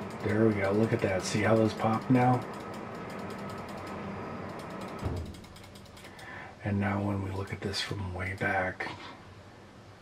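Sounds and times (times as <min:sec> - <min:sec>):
rapid mechanical ratchet clicks: 0:00.0 - 0:08.8.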